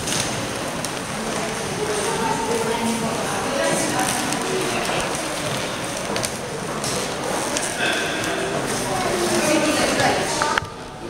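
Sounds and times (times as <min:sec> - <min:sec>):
indistinct crowd voices: 0:00.0 - 0:11.0.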